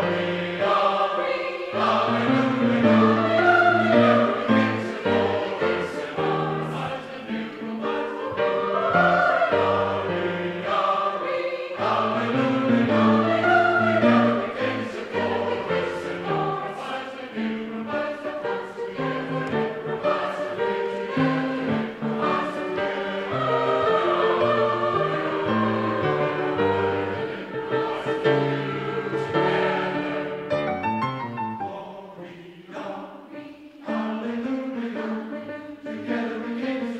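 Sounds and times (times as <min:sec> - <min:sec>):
mixed choir singing in harmony: 0:00.0 - 0:36.9.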